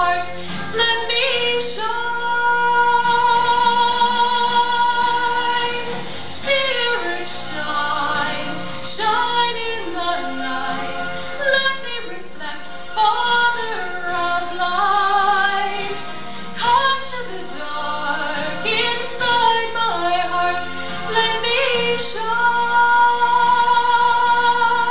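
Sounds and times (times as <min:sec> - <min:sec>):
instrumental backing music: 0:00.0 - 0:24.9
woman singing: 0:00.0 - 0:24.9.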